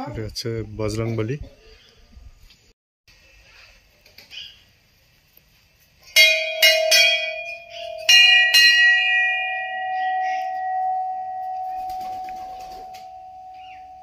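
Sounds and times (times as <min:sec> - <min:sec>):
brass bells ringing: 0:06.2 - 0:14.0.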